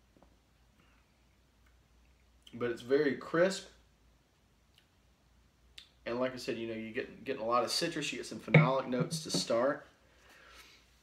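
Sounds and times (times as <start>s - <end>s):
low steady hum: 8.5s - 9.6s.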